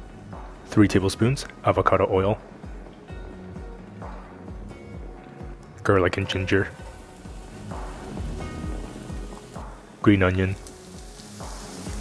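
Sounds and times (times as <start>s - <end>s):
background music: 0.0s - 12.0s
garlic sizzling in hot oil: 6.6s - 12.0s.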